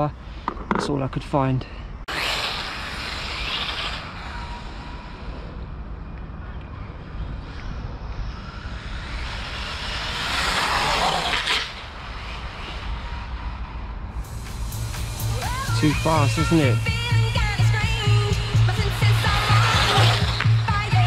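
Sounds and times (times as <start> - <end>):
electric rc car motor and tyres: 2.1 - 21.0.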